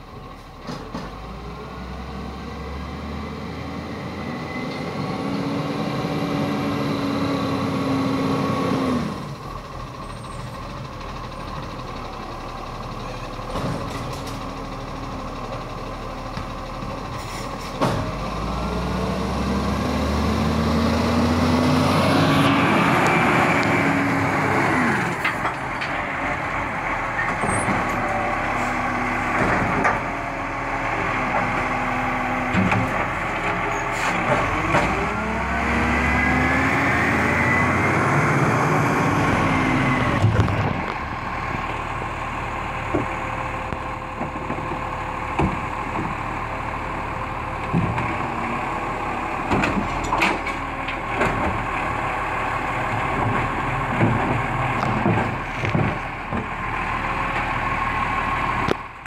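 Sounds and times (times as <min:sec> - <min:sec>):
garbage truck diesel engine: 0:00.0 - 0:59.0.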